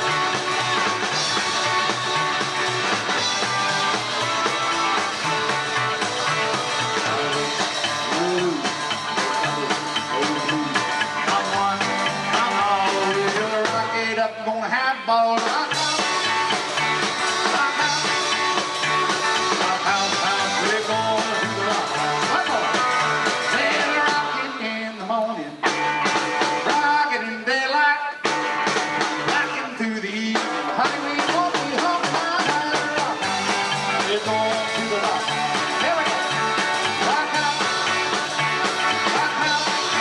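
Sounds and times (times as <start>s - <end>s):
drum kit: 0.0s - 40.0s
electric guitar: 0.0s - 40.0s.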